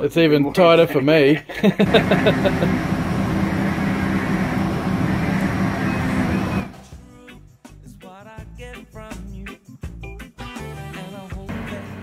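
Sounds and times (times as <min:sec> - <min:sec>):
loud engine humming: 0:01.8 - 0:06.9, 0:11.5 - 0:12.0
music with singing: 0:06.5 - 0:12.0.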